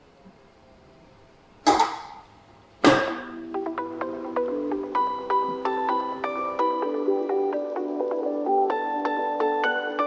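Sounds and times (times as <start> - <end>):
weight plates clanking on metal rack: 2.8 - 3.4.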